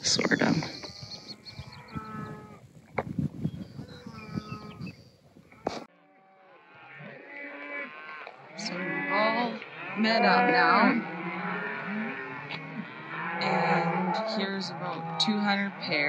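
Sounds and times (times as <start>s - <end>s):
cows mooing: 0.0s - 2.7s, 3.8s - 16.0s
wind rumble on microphone: 0.0s - 5.9s.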